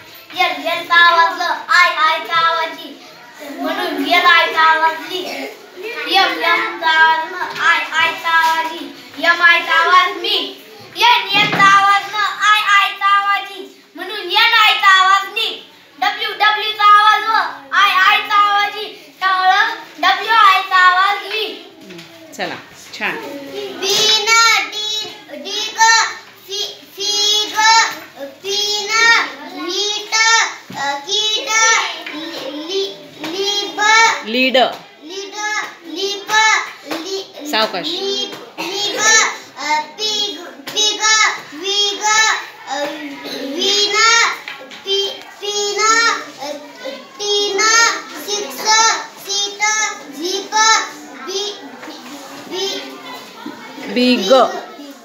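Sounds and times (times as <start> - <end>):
children's voices: 0.0 - 55.0
girl reading words aloud: 0.0 - 55.0.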